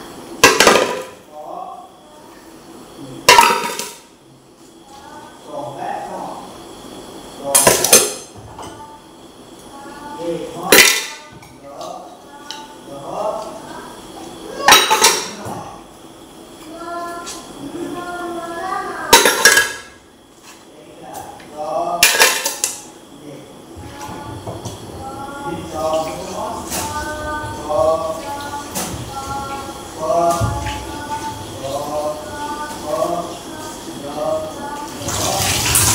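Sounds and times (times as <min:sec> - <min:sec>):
metal pots clattering: 0:03.3 - 0:04.0, 0:10.7 - 0:11.3, 0:14.6 - 0:15.4, 0:19.1 - 0:19.9, 0:22.0 - 0:22.8.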